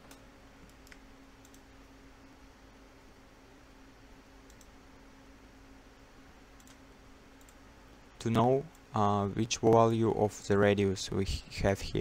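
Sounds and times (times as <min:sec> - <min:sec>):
low room hum: 0:00.0 - 0:12.0
computer mouse clicks: 0:00.1 - 0:01.7, 0:04.4 - 0:04.7, 0:06.6 - 0:06.8, 0:07.4 - 0:07.6.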